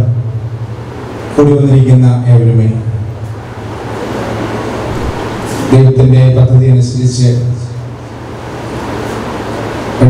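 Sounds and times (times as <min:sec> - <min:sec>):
low hum: 0:00.0 - 0:10.0
steady rushing noise: 0:00.0 - 0:10.0.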